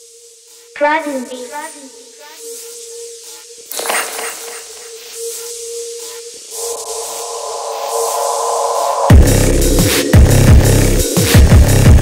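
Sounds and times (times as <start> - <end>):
hissing distorted noise layer: 0.0 - 11.4
held synth tone: 6.5 - 9.8.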